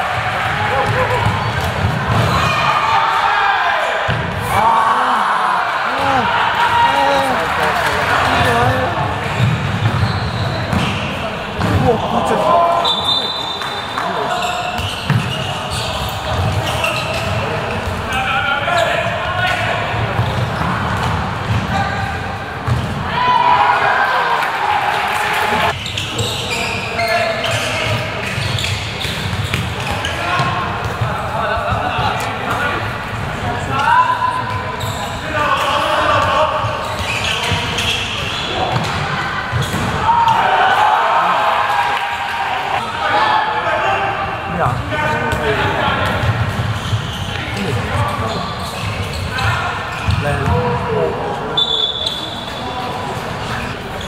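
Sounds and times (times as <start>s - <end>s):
people shouting: 2.3s - 9.2s
ball bouncing on court: 7.7s - 11.0s, 14.8s - 15.4s, 22.6s - 23.0s, 38.7s - 40.0s, 50.0s - 50.6s.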